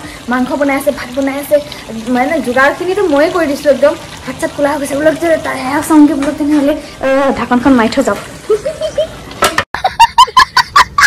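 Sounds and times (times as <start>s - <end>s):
young child laughing: 8.5s - 9.2s.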